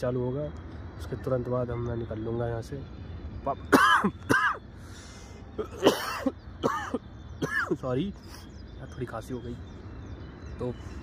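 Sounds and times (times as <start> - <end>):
man coughing: 3.7 - 4.6, 5.6 - 7.8.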